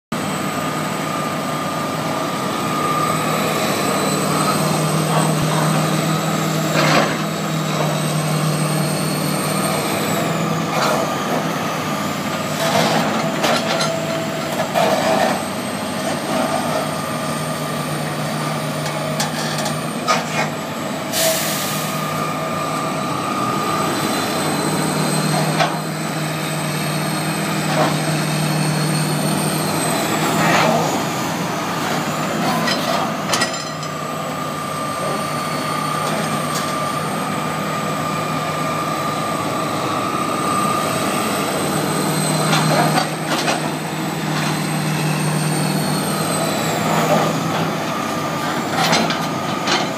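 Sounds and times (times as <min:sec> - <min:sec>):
excavator diesel engine: 0:00.1 - 0:49.9
hydraulics whining: 0:00.2 - 0:49.9.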